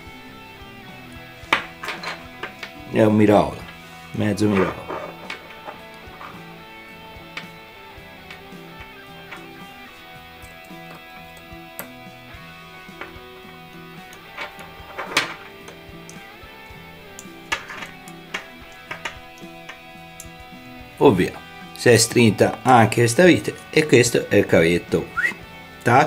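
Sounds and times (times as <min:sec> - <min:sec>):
soft guitar background music: 0:00.0 - 0:26.0
small metal parts clicking: 0:01.5 - 0:02.8, 0:04.6 - 0:06.6, 0:14.1 - 0:16.2, 0:17.1 - 0:20.4.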